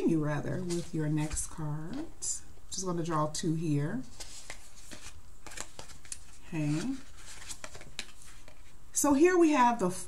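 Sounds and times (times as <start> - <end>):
cards flicking and rustling: 4.1 - 8.7.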